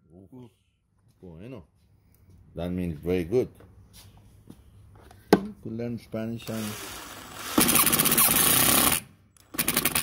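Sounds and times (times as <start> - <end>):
impact driver hammering screw: 6.7 - 10.0.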